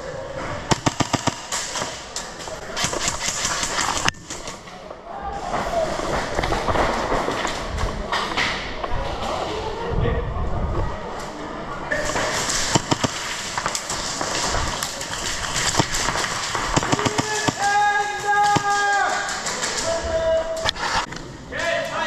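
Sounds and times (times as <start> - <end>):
people's voices: 0.0 - 22.0
airsoft gunshots and hits: 0.7 - 2.0, 12.0 - 14.7, 15.5 - 17.8
people shouting: 16.8 - 20.6.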